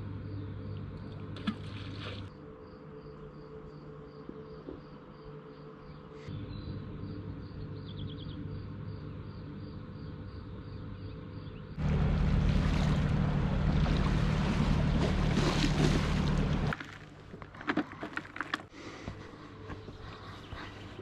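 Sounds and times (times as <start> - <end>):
motor boat engine droning: 11.8 - 16.8.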